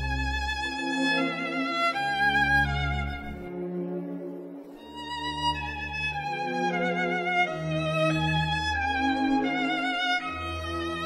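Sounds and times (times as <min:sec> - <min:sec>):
bowed strings: 0:00.0 - 0:11.0.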